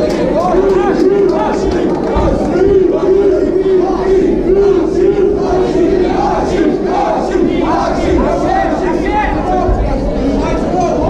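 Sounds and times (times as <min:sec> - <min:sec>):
crowd shouting and yelling: 0:00.0 - 0:11.0.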